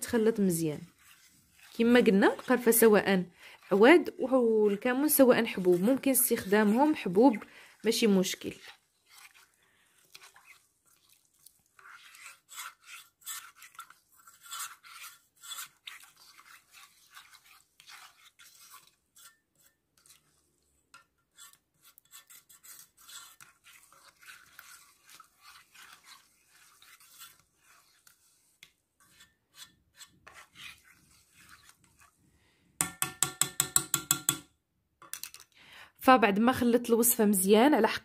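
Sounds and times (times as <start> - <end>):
spoon stirring and scraping pot: 0.0 - 35.5.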